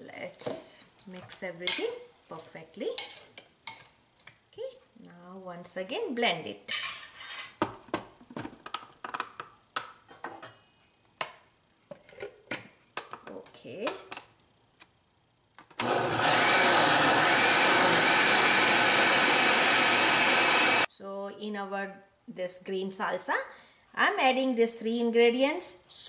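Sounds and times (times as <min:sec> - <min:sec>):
blender running: 0:15.8 - 0:20.9.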